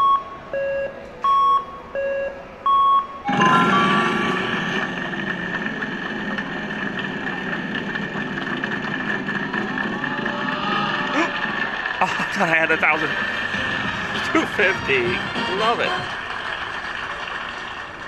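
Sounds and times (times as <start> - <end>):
slot machine music: 3.3 - 4.8
slot machine alternating beeps: 3.3 - 5.0
rapid ticking of spinning wheel: 3.9 - 17.6.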